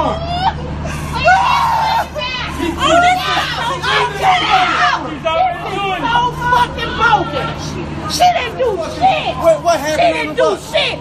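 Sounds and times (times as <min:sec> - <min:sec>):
people shouting over one another: 0:00.0 - 0:11.0
steady low hum: 0:00.0 - 0:11.0.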